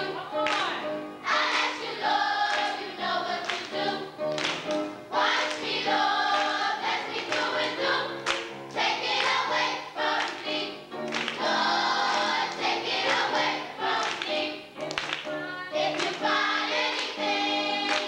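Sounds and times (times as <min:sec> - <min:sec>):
children's choir singing gospel: 0:00.0 - 0:18.0
hand claps: 0:00.4 - 0:00.7, 0:02.5 - 0:02.8, 0:03.4 - 0:05.6, 0:07.2 - 0:08.5, 0:10.2 - 0:11.4, 0:14.0 - 0:15.3, 0:15.9 - 0:16.2.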